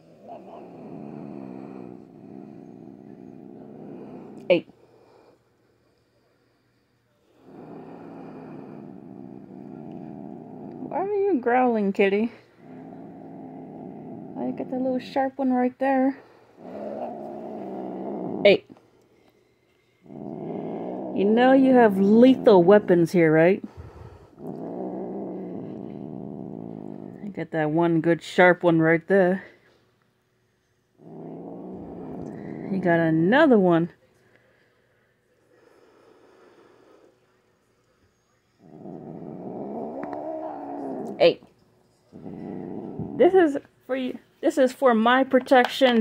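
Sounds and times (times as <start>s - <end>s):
cat growling: 0.0s - 5.3s, 7.3s - 11.6s, 12.2s - 15.2s, 16.2s - 18.8s, 20.0s - 27.3s, 31.0s - 33.4s, 38.6s - 43.4s.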